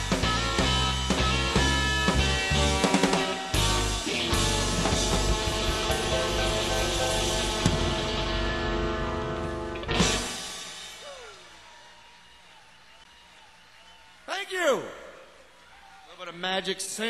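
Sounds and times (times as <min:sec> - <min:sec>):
electric blues band holding chord: 0:00.0 - 0:10.9
band ensemble hit: 0:00.0 - 0:11.0.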